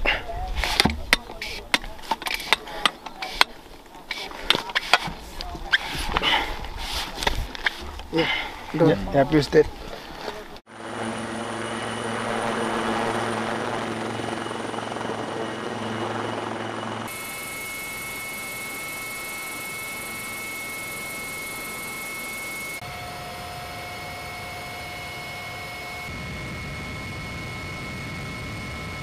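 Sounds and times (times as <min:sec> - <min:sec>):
helicopter rotor drone: 0:10.7 - 0:29.0
high turbine whine in cabin: 0:10.7 - 0:29.0.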